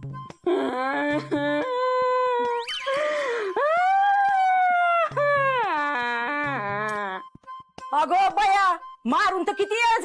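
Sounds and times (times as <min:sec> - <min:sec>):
boy wailing: 0:03.6 - 0:07.2.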